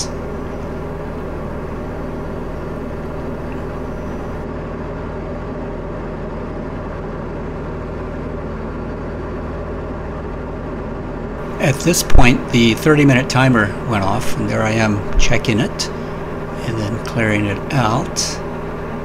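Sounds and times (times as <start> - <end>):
airplane engine and propeller drone: 0.0 - 19.0.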